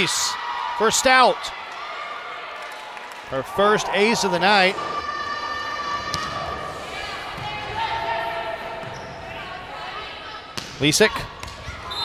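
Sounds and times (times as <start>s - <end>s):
crowd voices: 0.0s - 12.0s
echoing court sounds: 0.0s - 12.0s.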